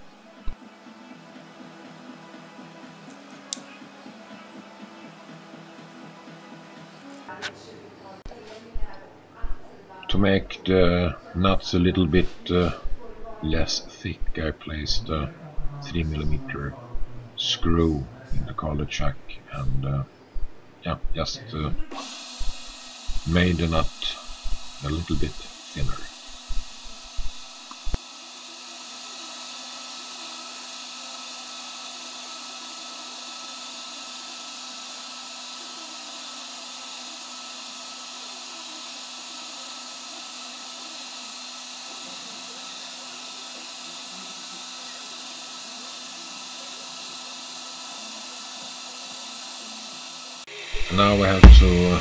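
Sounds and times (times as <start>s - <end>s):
lathe running: 21.9s - 52.0s.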